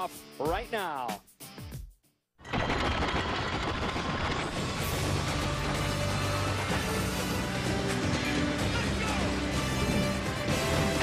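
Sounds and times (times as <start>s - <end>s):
rattling rumbling sound effects: 2.4s - 8.0s.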